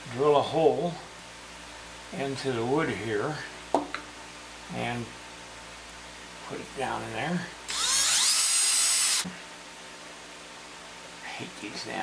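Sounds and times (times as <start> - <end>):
cordless drill boring into wood: 7.7 - 9.3.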